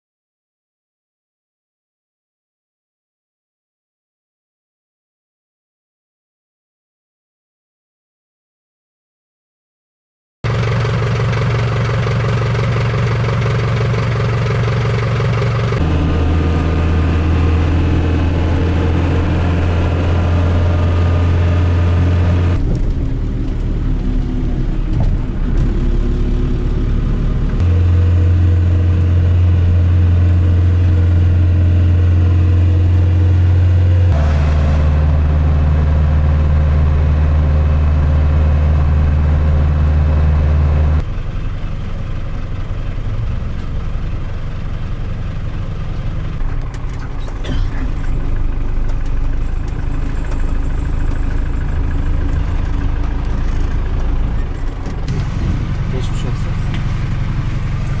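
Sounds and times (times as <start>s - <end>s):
minibus engine droning: 10.5s - 58.0s.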